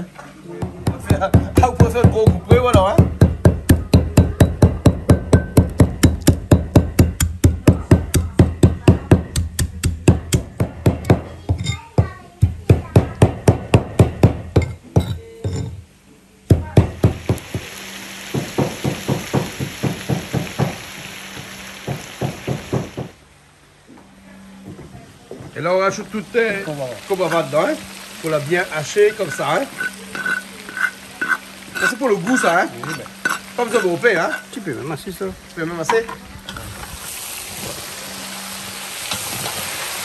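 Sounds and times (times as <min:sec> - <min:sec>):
cleaver chopping leaves: 0:00.6 - 0:11.3, 0:16.5 - 0:23.2
steady hiss: 0:16.9 - 0:23.7, 0:25.6 - 0:35.9.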